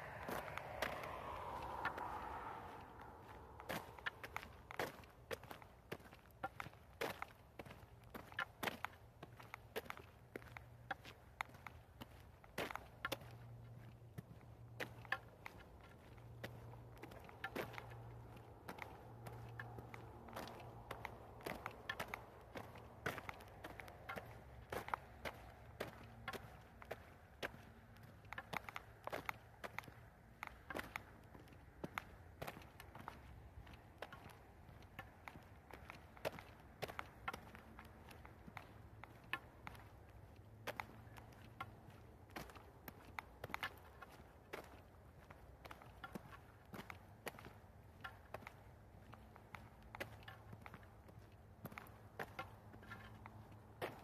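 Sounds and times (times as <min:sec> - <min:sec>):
footsteps outdoors: 0:00.0 - 0:54.0.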